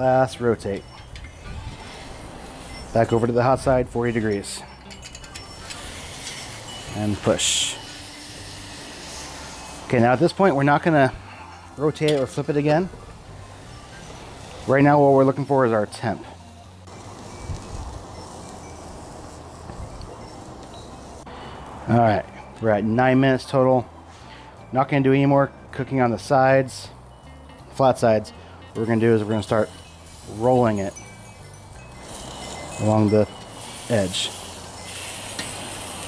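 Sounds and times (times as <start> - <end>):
meat sizzling on a grill: 0.0 - 22.8, 26.1 - 36.0.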